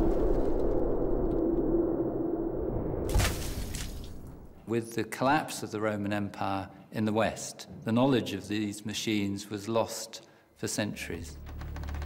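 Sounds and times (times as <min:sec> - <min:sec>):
rumble: 0:00.0 - 0:04.6.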